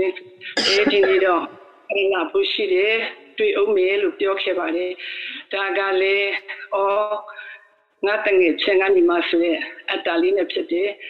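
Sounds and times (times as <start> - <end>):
woman reciting in chant-like voice: 0.0 - 11.0.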